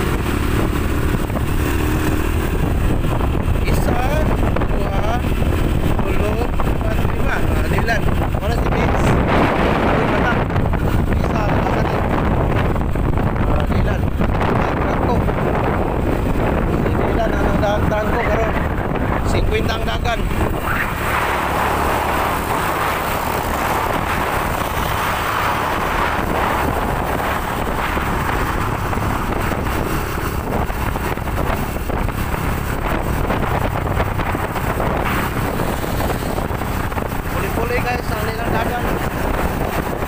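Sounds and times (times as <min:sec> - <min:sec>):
vehicle low rumble: 0:00.0 - 0:40.0
wind rushing over microphone: 0:00.0 - 0:40.0.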